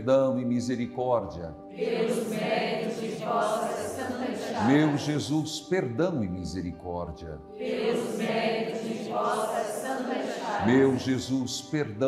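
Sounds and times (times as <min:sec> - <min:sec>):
voices chanting prayer in unison: 0:01.7 - 0:05.5, 0:07.5 - 0:12.0.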